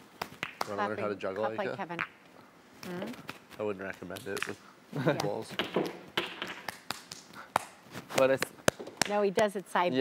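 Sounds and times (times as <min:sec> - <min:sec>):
hand taps and slaps: 0:05.2 - 0:09.2.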